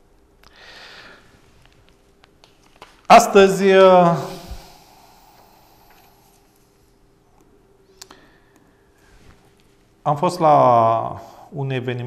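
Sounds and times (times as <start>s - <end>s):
thin steady hum: 0.0s - 12.0s.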